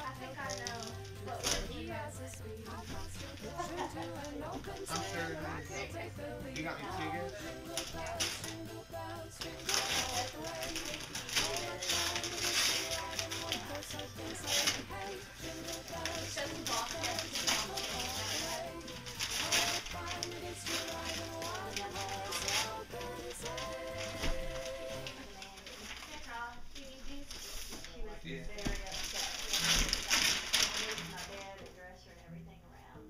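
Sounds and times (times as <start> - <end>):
background music: 0.0 - 26.0, 28.2 - 33.0
wrapping paper tearing: 0.2 - 1.9, 2.7 - 5.6, 6.9 - 28.0, 28.6 - 31.8.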